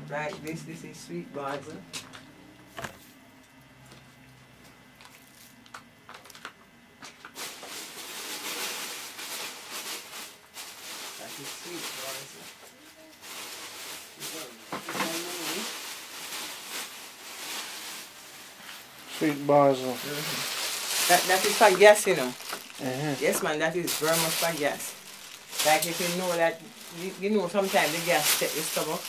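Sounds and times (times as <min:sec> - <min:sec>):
dried herb branches rustling: 0:07.4 - 0:29.0.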